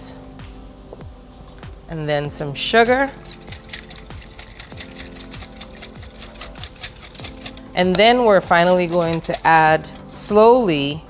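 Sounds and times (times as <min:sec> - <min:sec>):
soft background music: 0:00.0 - 0:11.0
whisk clicking against glass bowl: 0:03.1 - 0:09.5.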